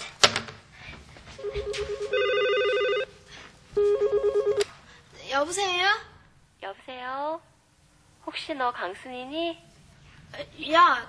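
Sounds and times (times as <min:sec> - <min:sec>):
telephone ringing with warbling trill: 0:01.4 - 0:03.1, 0:03.8 - 0:04.6.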